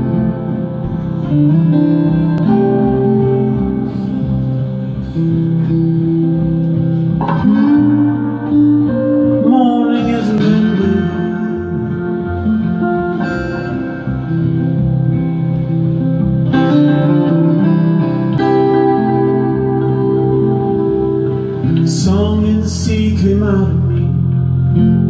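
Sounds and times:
acoustic guitar playing: 0:00.0 - 0:25.0.

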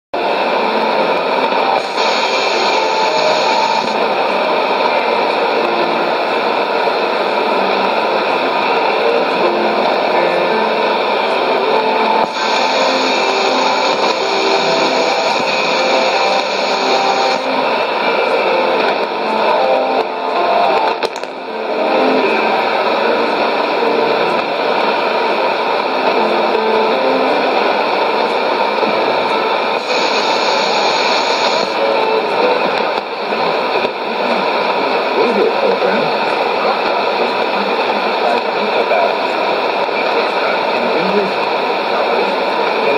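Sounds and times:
radio hiss and static: 0:00.2 - 0:42.9.

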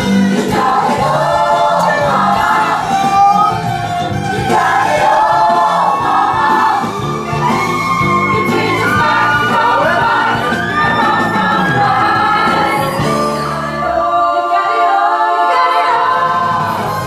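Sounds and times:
choir singing: 0:00.0 - 0:17.0.

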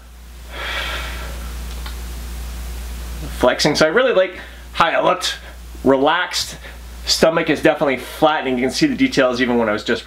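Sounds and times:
even hiss: 0:00.0 - 0:10.0
steady low hum: 0:00.0 - 0:10.0.

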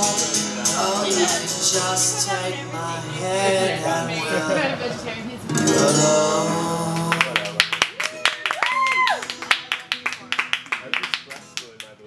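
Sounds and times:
audience clapping: 0:07.0 - 0:12.0
high whoop: 0:08.0 - 0:09.3.

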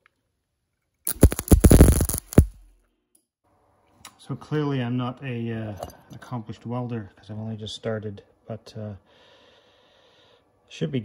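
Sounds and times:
welder arc crackling and buzzing: 0:01.1 - 0:02.6.

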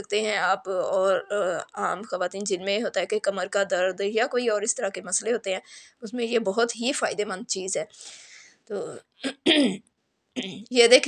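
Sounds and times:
woman speaking: 0:00.0 - 0:09.8, 0:10.4 - 0:11.0
woman clearing throat: 0:09.2 - 0:09.8.

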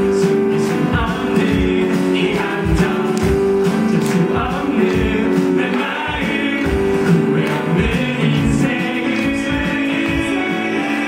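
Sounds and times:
amplified instrumental accompaniment: 0:00.0 - 0:11.0
men singing into microphones: 0:00.0 - 0:11.0.

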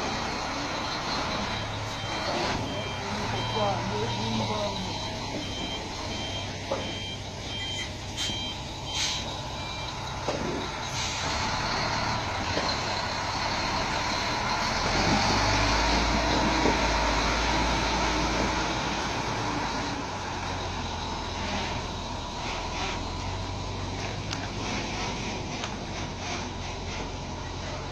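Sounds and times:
diesel engine rumbling: 0:00.0 - 0:27.9
truck reversing beeper: 0:00.0 - 0:27.9.

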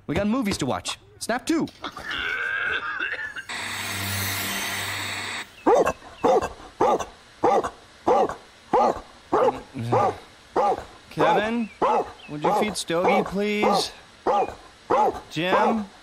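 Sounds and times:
steady hiss: 0:00.0 - 0:16.0
cartoon dog barking: 0:05.6 - 0:15.9.

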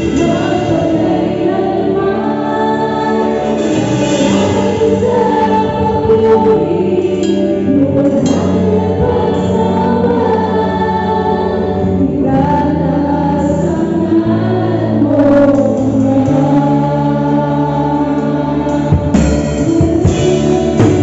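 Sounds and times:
bass guitar: 0:00.0 - 0:21.0
voices singing slow praise song: 0:00.0 - 0:21.0.

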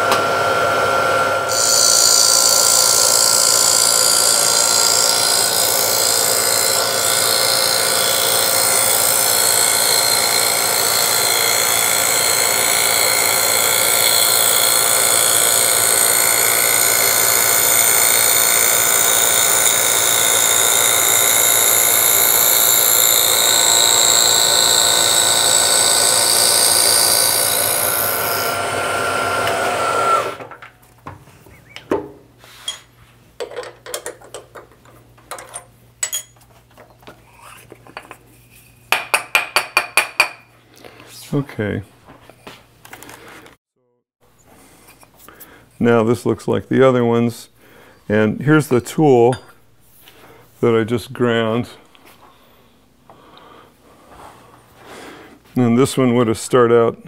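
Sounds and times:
milling machine spindle whine: 0:00.0 - 0:30.5.

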